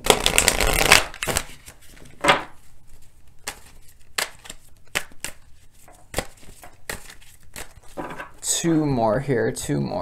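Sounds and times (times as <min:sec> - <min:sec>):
cards riffle-shuffled: 0:00.0 - 0:02.1, 0:02.9 - 0:08.0.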